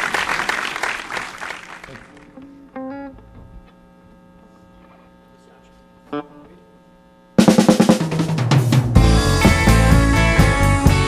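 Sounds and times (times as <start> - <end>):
amplifier electrical hum: 1.7 - 11.0
guitar note: 2.1 - 5.1, 6.1 - 6.8, 9.0 - 11.0
snare drum roll: 7.4 - 11.0.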